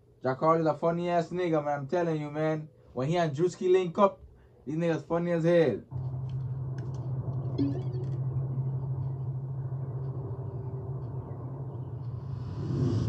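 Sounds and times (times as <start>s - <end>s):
steady low hum: 0.0s - 13.0s
music: 6.0s - 13.0s.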